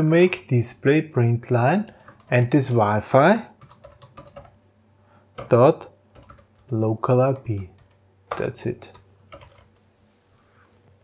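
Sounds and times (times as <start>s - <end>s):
computer keyboard keystrokes: 3.6s - 4.6s, 6.1s - 6.8s, 7.6s - 9.8s.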